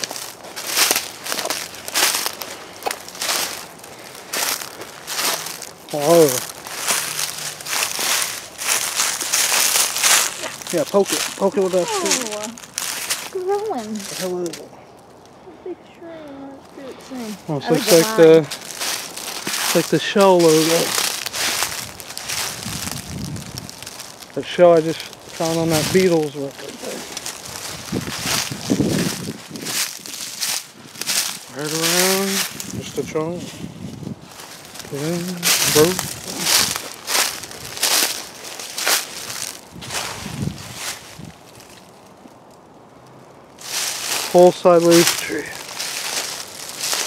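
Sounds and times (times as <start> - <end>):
footsteps crunching dry leaves: 0.0 - 15.2, 16.0 - 47.0.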